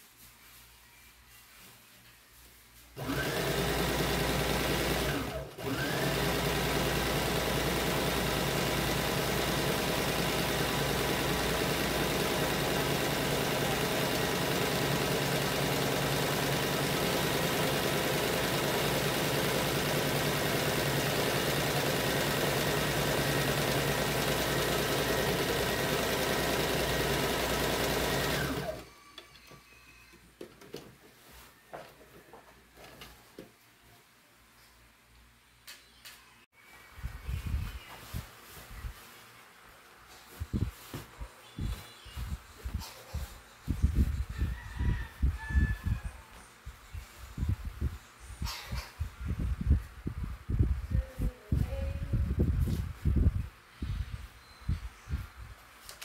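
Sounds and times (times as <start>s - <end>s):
sewing machine running: 3.0s - 28.9s.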